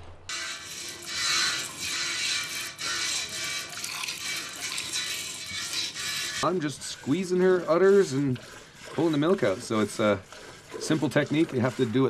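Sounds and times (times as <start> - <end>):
milk squirting into steel pot: 0.3 - 12.0.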